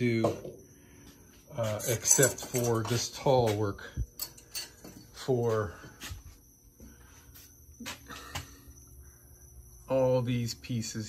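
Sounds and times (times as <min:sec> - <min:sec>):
faint footsteps: 0:04.8 - 0:08.5.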